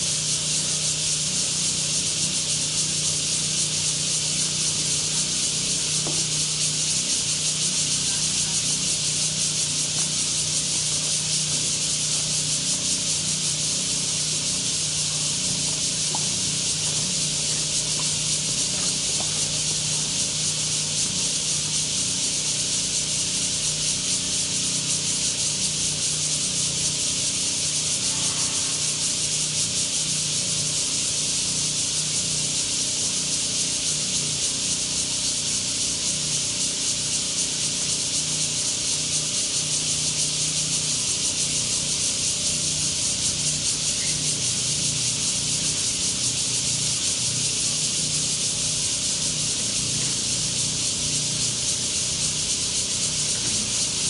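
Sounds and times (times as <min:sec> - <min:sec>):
cicadas chorus: 0:00.0 - 0:54.0.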